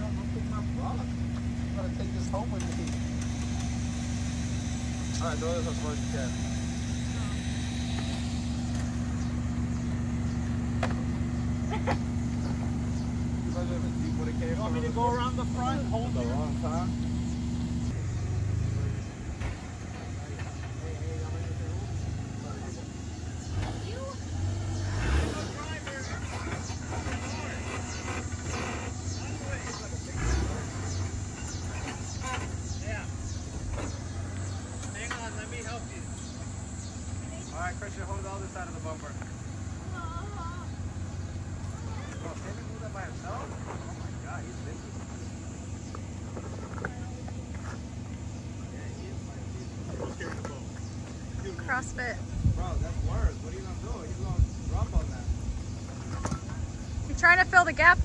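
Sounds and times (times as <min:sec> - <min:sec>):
engine running at low revs: 0:00.0 - 0:58.0
voices talking: 0:00.0 - 0:58.0.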